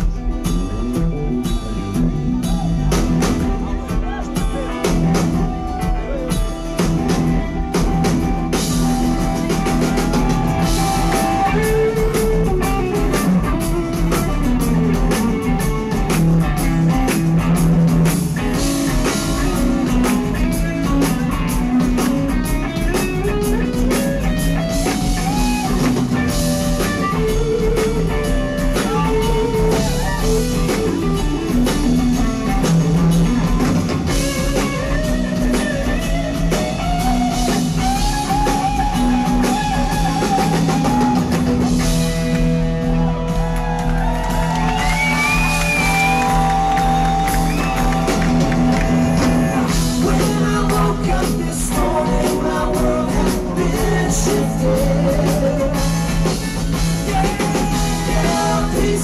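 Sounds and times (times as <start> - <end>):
drum kit: 0.0 - 59.0
rock band playing: 0.0 - 59.0.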